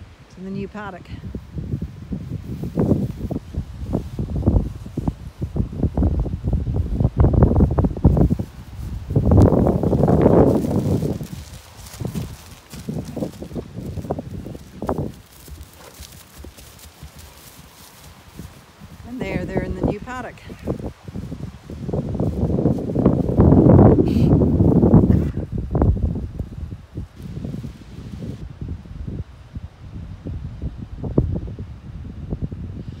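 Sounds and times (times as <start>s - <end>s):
hoof thuds on grass: 1.8s - 28.4s
person walking: 6.2s - 25.1s
rustling: 7.6s - 25.4s.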